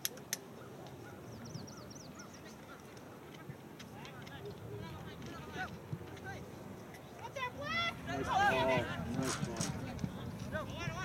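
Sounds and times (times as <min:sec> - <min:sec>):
distant shouts and calls: 0:00.0 - 0:11.0.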